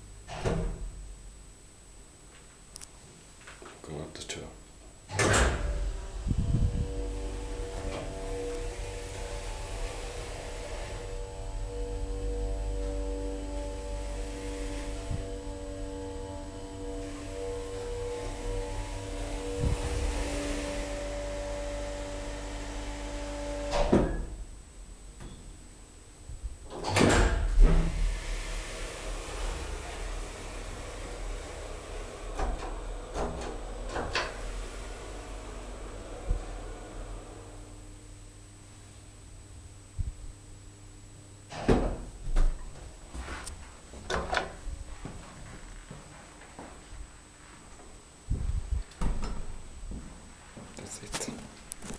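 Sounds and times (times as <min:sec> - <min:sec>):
elevator humming: 0:04.8 - 0:51.9
elevator clunk: 0:05.1 - 0:06.2.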